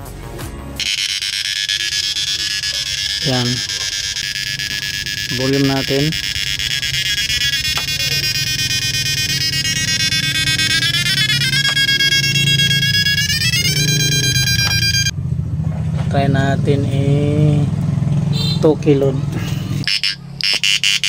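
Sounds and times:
high-pitched electrical whine: 0.8 - 15.2
steady low hum: 0.8 - 15.6.

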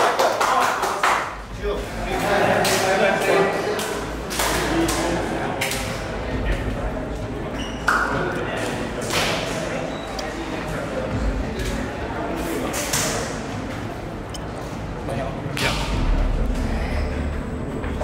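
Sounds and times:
men chattering: 1.6 - 7.5.

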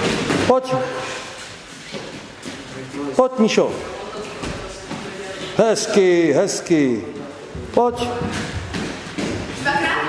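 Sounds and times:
children landing on gym mats: 7.6 - 10.0.

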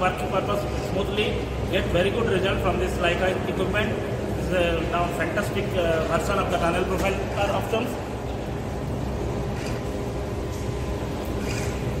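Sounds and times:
faint steady hum: 0.0 - 12.0
low rumble of machinery: 0.0 - 12.0.

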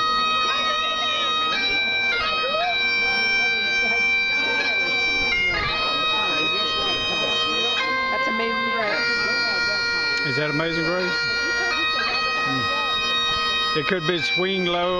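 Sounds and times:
bagpipes playing slow tune: 0.0 - 14.9.

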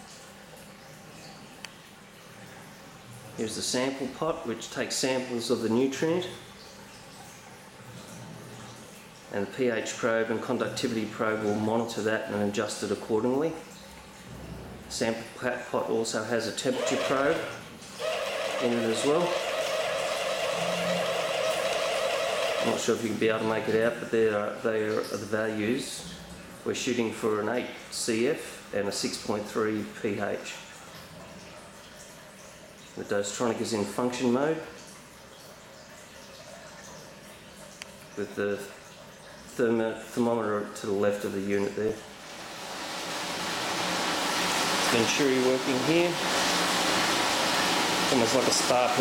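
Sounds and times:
water rushing and churning in tank: 0.0 - 49.0
machine hum with whine: 18.0 - 22.8.

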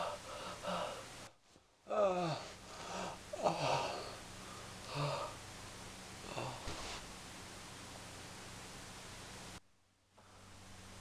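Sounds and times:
loud falling moan: 1.9 - 4.2, 6.2 - 6.8
person whimpering and gasping: 1.9 - 4.2.

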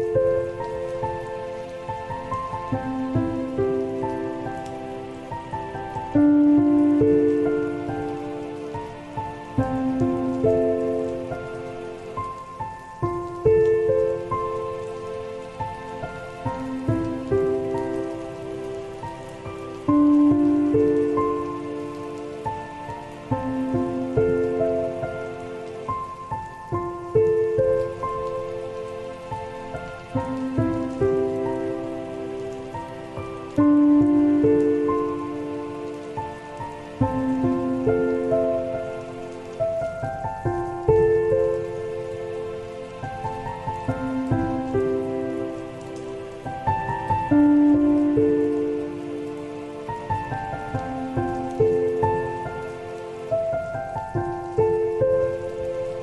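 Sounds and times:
slow soft solo piano: 0.0 - 56.0
steady rainfall: 0.0 - 56.0.

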